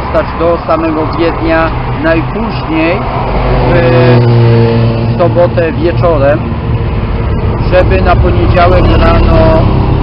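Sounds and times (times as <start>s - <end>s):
vehicle passing by: 0.0s - 10.0s.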